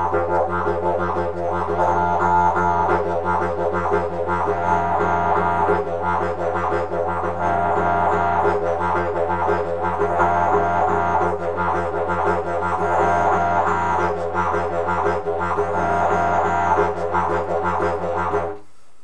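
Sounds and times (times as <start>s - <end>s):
didgeridoo drone with rolling rhythm: 0.0s - 18.6s.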